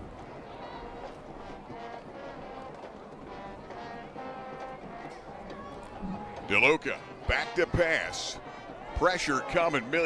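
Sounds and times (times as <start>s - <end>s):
low background noise: 0.0s - 10.0s
faint brass band music: 0.5s - 9.9s.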